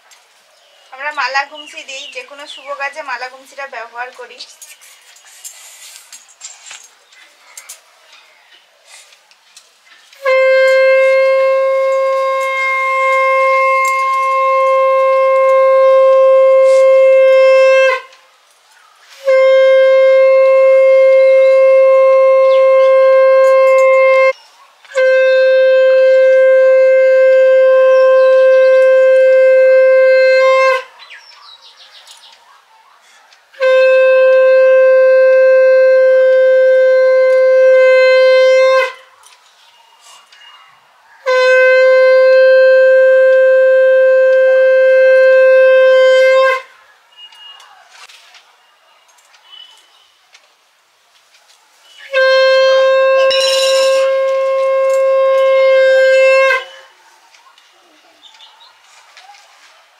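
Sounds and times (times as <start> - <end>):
conch shell blown: 10.2 - 18.2, 19.2 - 30.9, 33.5 - 39.1, 41.2 - 47.3, 51.8 - 57.0.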